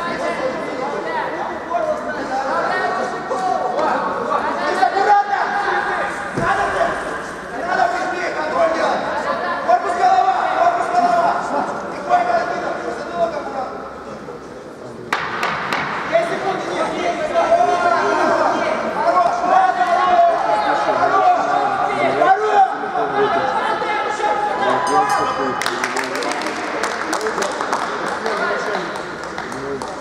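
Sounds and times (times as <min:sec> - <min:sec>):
people shouting and talking: 0:00.0 - 0:30.0.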